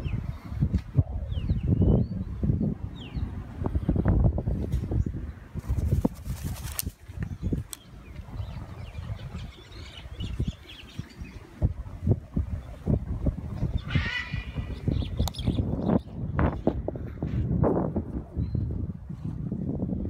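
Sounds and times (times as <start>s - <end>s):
wind rumble on microphone: 0.0s - 20.0s
wings flapping: 5.6s - 7.8s
harsh parrot squawk: 13.8s - 14.8s.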